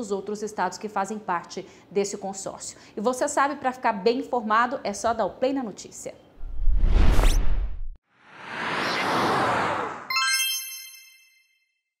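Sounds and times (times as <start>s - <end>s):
bright chime ding: 10.1s - 11.6s.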